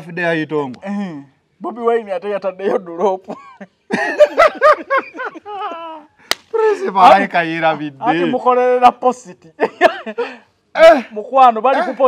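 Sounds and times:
men laughing: 2.6s - 8.4s, 9.4s - 12.0s
sharp smack: 6.3s - 6.6s.

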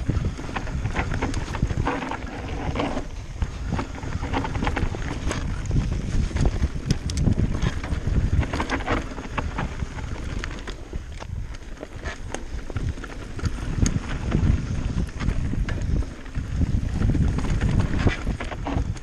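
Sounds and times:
bike rattling and knocking: 0.0s - 19.0s
tyres rumbling on dirt: 0.0s - 19.0s
wind buffeting microphone: 0.0s - 19.0s.

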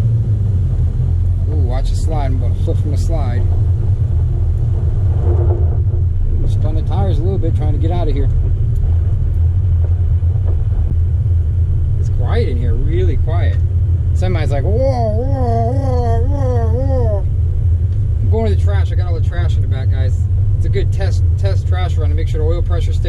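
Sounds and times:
pickup truck engine drone: 0.0s - 23.0s.

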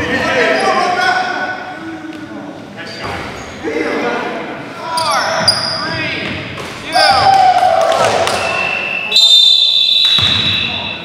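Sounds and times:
voices echoing in a hall: 0.0s - 11.0s
sneakers squeaking: 4.9s - 7.4s, 8.3s - 11.0s
loud shout: 6.8s - 8.6s
basketball bouncing: 10.0s - 10.8s.

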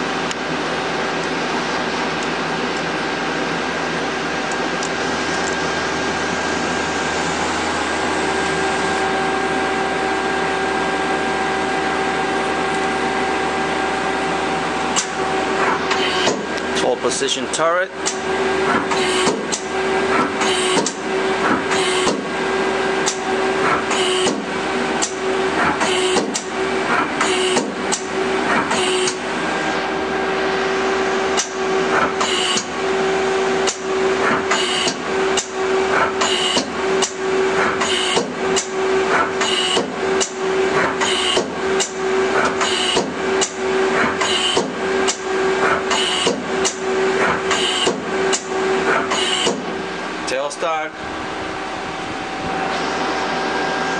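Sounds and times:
machine hum: 0.0s - 53.9s.

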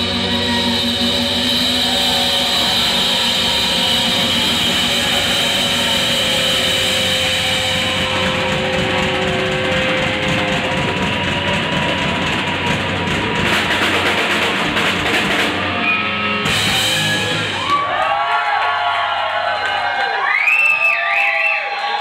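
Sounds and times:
distorted guitar drone: 0.0s - 17.7s
cymbals and drums: 0.0s - 17.8s.

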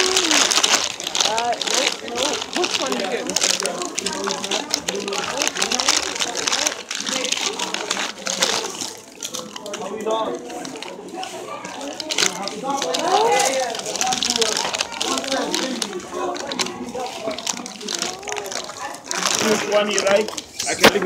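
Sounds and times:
people talking indistinctly: 0.0s - 21.0s
plastic packaging crinkling: 0.0s - 21.0s.

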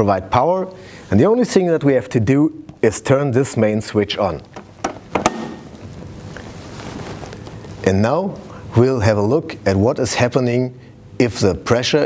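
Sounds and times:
switch clicks: 4.4s - 5.8s.

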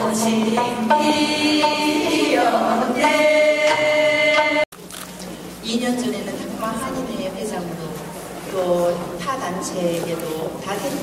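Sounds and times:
women singing long notes: 0.0s - 4.7s.

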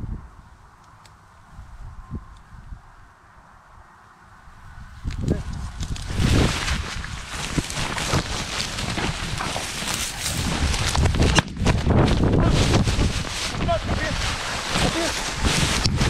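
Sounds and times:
wind buffeting microphone: 0.0s - 16.0s
dry grass swishing on camera: 5.0s - 16.0s.

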